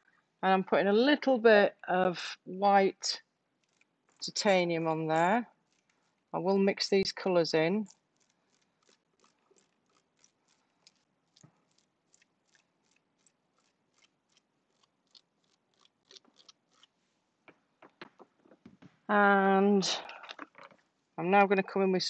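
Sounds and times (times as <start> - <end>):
paint brush dabbing: 3.6 - 17.1.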